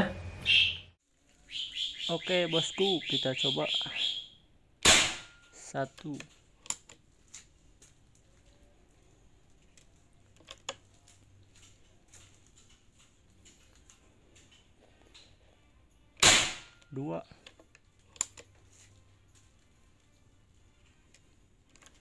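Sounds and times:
air rifle shot: 4.8 - 5.4, 16.2 - 16.8.

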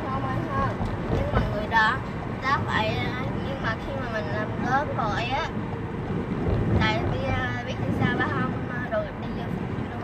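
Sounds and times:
people talking: 0.0 - 5.5, 6.8 - 10.0
car road and engine rumble: 0.0 - 10.0.

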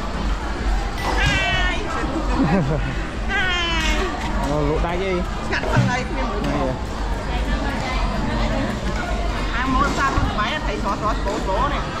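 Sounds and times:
people talking: 7.3 - 12.0.

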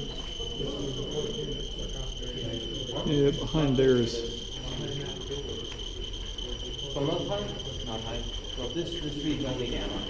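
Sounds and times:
dosimeter high-pitched tone: 0.0 - 10.0.

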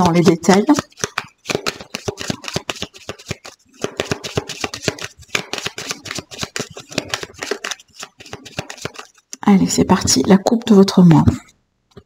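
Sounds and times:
cards being shuffled: 0.0 - 9.4.

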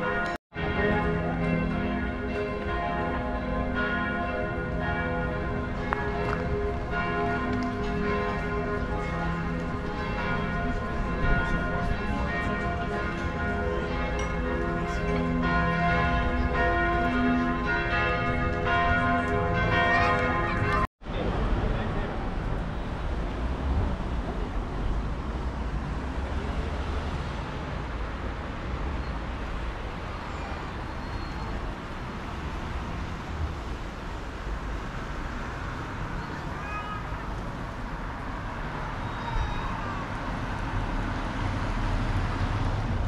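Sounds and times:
church bells pealing: 0.0 - 20.9.

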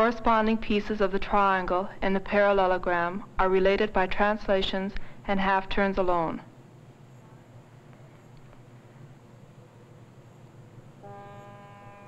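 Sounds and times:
film soundtrack hum and hiss: 0.0 - 12.0
held musical note: 11.0 - 12.0.

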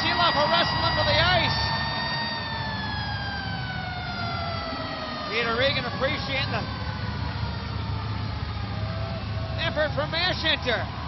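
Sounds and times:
arena crowd noise: 0.0 - 11.0
high siren-like tone falling: 0.0 - 11.0.

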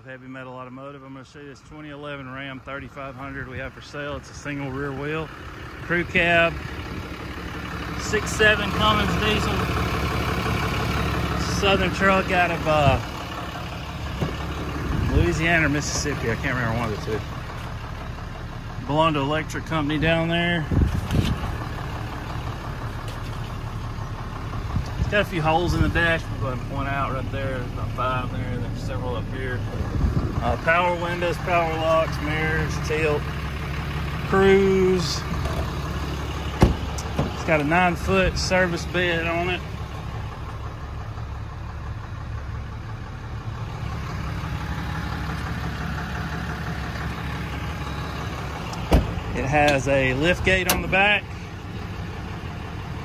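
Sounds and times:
diesel engine idling: 0.0 - 53.0
short knocks: 36.6 - 37.4.

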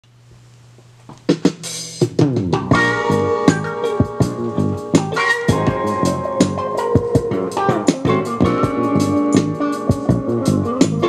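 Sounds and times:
drum hits: 1.3 - 11.0.

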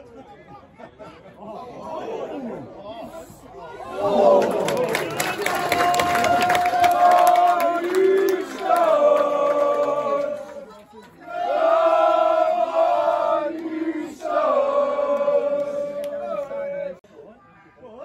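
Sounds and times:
people clapping: 4.0 - 12.1, 13.3 - 14.4, 15.0 - 16.6
men chanting in unison: 6.6 - 10.6, 11.3 - 17.0.

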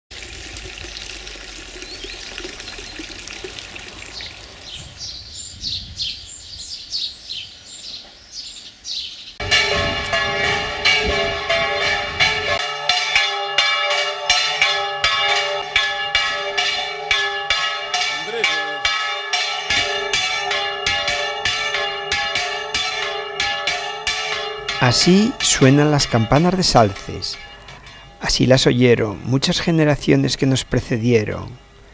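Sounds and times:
trickling fountain: 0.1 - 5.2
birds chirping: 1.7 - 12.6
church bells pealing: 9.4 - 31.9.

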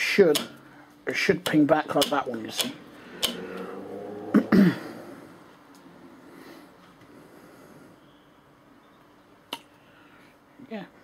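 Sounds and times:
person coughing: 4.3 - 5.0.

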